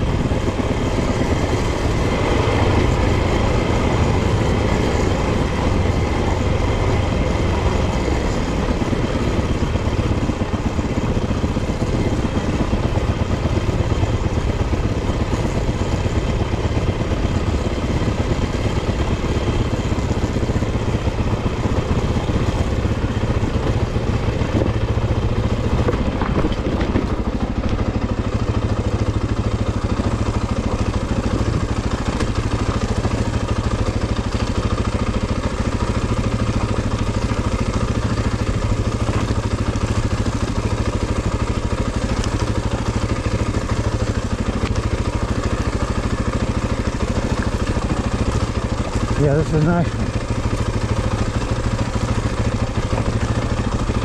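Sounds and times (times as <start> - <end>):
off-road vehicle engine running: 0.0 - 54.0.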